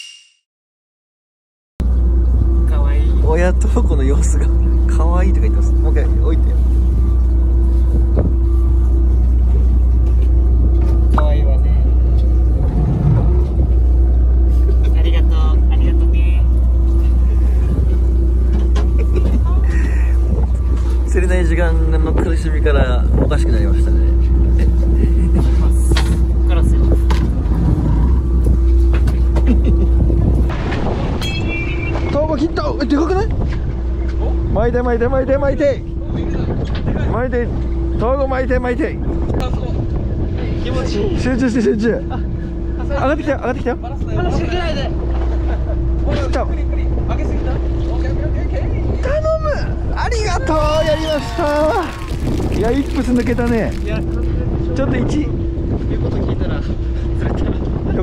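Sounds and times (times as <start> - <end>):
boat engine running: 1.8 - 49.0, 49.7 - 58.0
wind: 1.8 - 58.0
sea noise: 27.3 - 32.6, 50.5 - 54.6
voices: 50.0 - 55.3.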